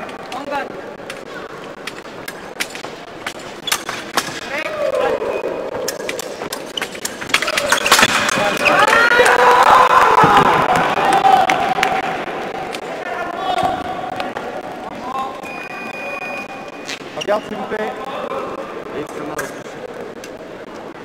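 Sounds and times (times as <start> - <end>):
people shouting and cheering: 4.4 - 6.5, 7.2 - 16.8.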